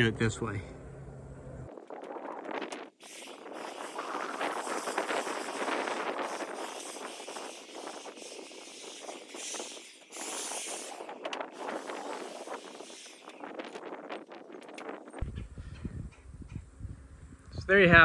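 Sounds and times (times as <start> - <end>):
wind blowing: 1.3 - 18.0.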